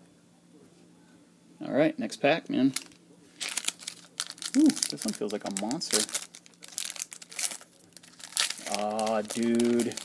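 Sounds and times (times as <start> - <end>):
foil pack crinkling and tearing: 2.7 - 10.0.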